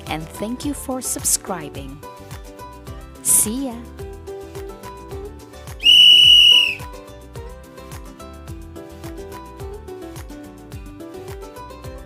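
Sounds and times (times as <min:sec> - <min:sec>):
background music with beat: 0:02.0 - 0:12.0
high whistle tone: 0:05.8 - 0:06.9.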